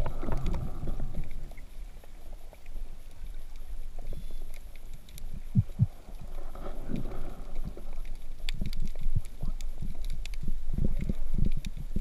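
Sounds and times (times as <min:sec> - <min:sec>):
sharp clicks and crackles: 0:00.0 - 0:12.0
underwater rumble of moving water: 0:00.0 - 0:12.0.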